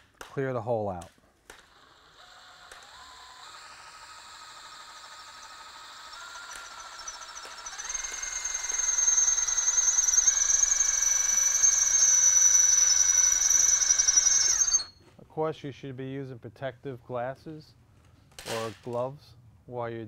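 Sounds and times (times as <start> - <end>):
power drill whining: 1.5 - 15.0
drill bit squealing on metal: 1.8 - 15.0.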